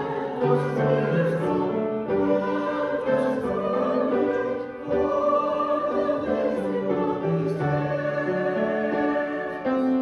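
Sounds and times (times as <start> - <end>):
group singing a hymn: 0.0 - 10.0
keyboard accompaniment: 0.0 - 10.0.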